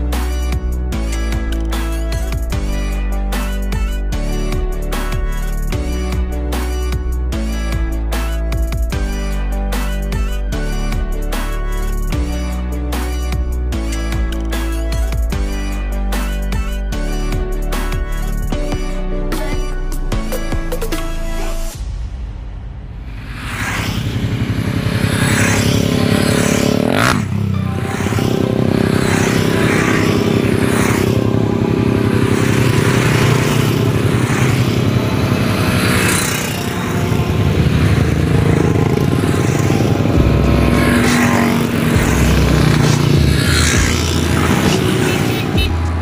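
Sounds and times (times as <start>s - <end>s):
motorcycles riding past: 23.2s - 46.0s.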